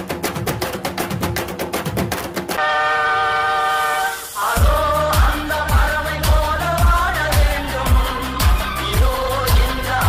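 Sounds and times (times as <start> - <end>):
fast percussion: 0.0 - 2.6, 4.0 - 10.0
train horn sound effect: 2.6 - 4.5.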